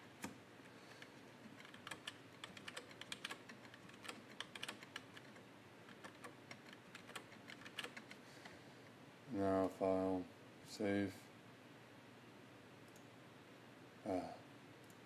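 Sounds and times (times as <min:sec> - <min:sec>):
computer keyboard clicking: 0:01.0 - 0:08.2.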